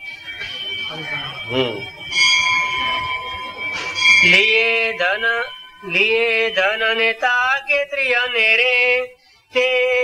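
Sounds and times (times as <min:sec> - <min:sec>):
metal bell ringing: 0:00.0 - 0:08.9.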